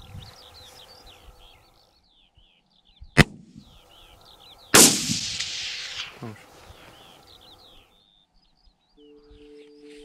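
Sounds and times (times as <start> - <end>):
rifle shot with rolling report: 3.2 - 3.7, 4.8 - 6.2
short sharp crack: 4.8 - 6.3.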